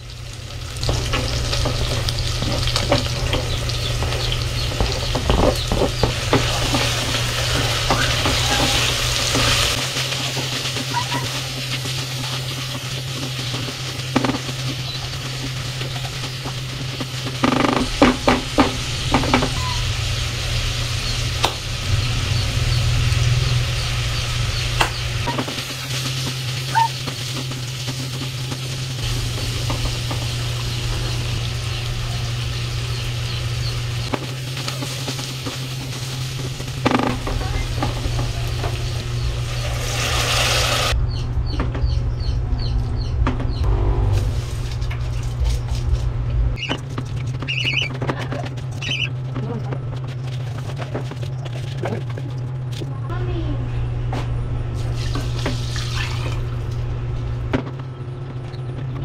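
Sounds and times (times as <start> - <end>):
food sizzling in hot oil: 0.0 - 41.0
steady low hum: 0.0 - 59.0.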